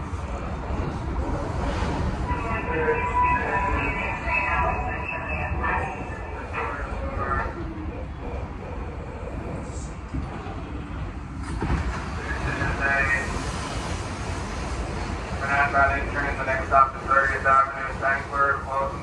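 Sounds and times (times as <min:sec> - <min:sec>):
subway train rumbling on rails: 0:00.0 - 0:19.0.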